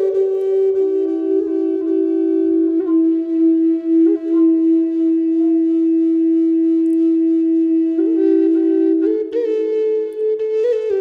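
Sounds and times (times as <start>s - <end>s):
flute long steady note: 0.0s - 11.0s.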